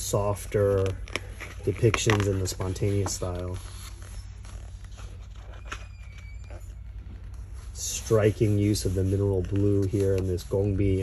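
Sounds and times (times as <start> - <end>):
hands on paper pages: 0.1 - 11.0.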